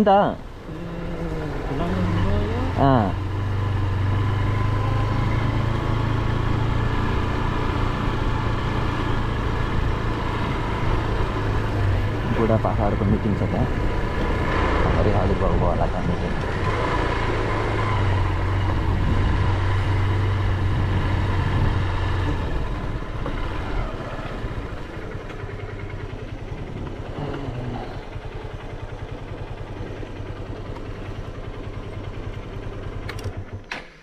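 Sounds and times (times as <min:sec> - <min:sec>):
motorcycle engine running: 0:00.1 - 0:34.0
engine clicks: 0:32.9 - 0:34.0.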